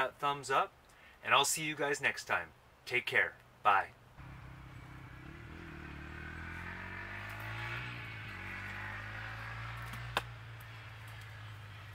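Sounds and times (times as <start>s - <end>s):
engine running: 4.2s - 11.9s.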